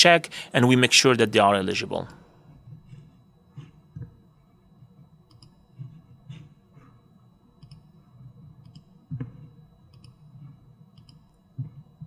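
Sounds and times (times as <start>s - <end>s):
computer mouse clicks: 5.3s - 5.6s, 7.6s - 7.9s, 8.6s - 10.2s, 11.0s - 11.4s.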